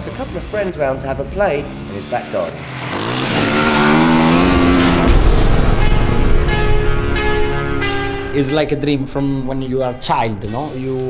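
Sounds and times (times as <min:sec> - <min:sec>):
motorcycle engine revving: 0:00.0 - 0:07.1, 0:09.4 - 0:11.0.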